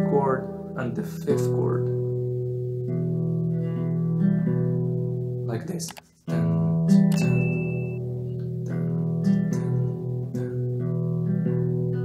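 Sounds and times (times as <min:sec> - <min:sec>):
fingerpicked classical guitar: 0:00.0 - 0:12.0.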